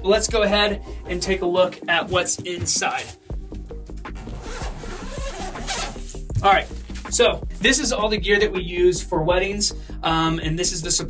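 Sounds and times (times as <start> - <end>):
background music: 0.0 - 11.0
zipper pulled open: 3.9 - 7.1.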